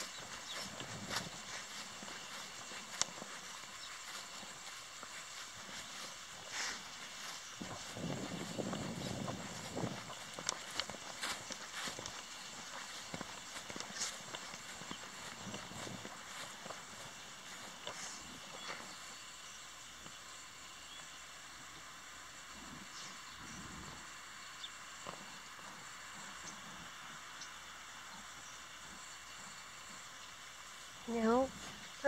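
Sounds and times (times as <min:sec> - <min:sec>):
footsteps on grass: 0:00.0 - 0:20.4
steady outdoor hiss: 0:00.0 - 0:32.0.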